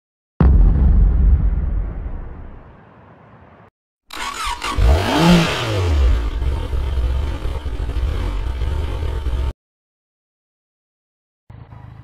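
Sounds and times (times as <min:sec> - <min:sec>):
engine revving and idling: 0:04.1 - 0:09.5, 0:11.5 - 0:12.0.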